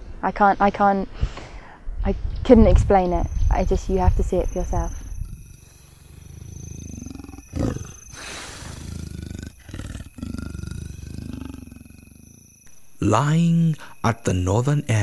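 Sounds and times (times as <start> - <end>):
big cat growling: 4.6 - 12.4.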